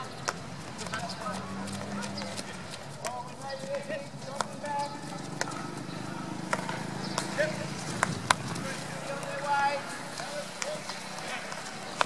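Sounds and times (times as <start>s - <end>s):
hockey sticks striking balls: 0.0s - 12.0s
distant shouts of players: 3.2s - 12.0s.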